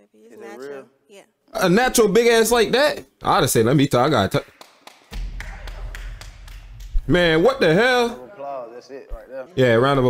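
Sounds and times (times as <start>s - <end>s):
low rumble: 5.1s - 8.2s.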